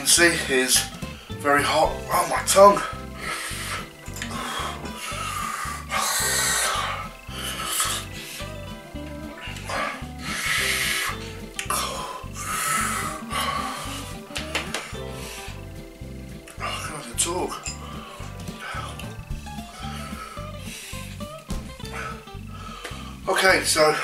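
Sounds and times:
background music with steady beat: 0:00.0 - 0:24.0
person breathing hard through mouth: 0:02.8 - 0:08.6, 0:09.4 - 0:16.9, 0:17.6 - 0:23.3.

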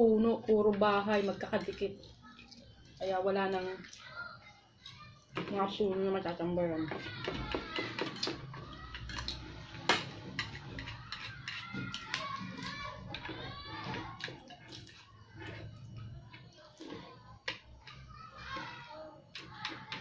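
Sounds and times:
cutlery tapping ceramic plates: 0:07.0 - 0:15.6.

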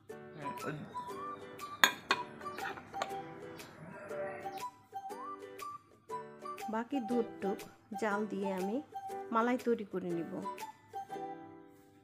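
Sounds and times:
background music with sliding melody: 0:00.0 - 0:12.0
glass clink: 0:01.8 - 0:03.2.

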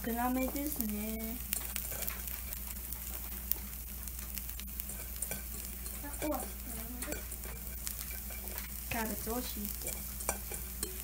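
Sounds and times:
batter sizzling on hot plate: 0:00.0 - 0:11.0.

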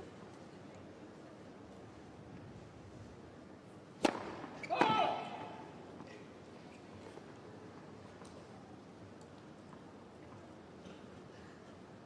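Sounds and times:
arena background hum: 0:00.0 - 0:12.0
racket hitting tennis ball: 0:04.0 - 0:04.9
player shouting: 0:04.7 - 0:05.6.

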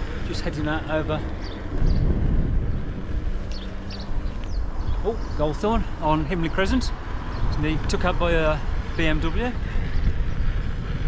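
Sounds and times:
road rumble: 0:00.0 - 0:11.0
wind buffeting microphone: 0:00.0 - 0:11.0.

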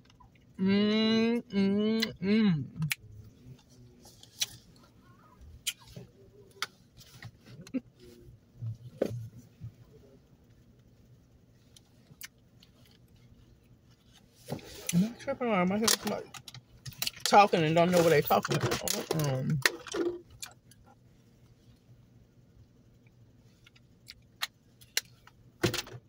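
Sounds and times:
faint low hum: 0:00.0 - 0:26.0
person chewing: 0:01.4 - 0:03.0.

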